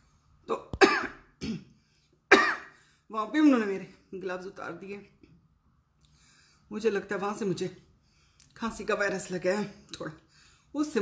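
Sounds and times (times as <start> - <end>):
woman coughing: 0.5 - 2.8
woman speaking: 3.1 - 5.2, 6.7 - 7.9, 8.5 - 11.0.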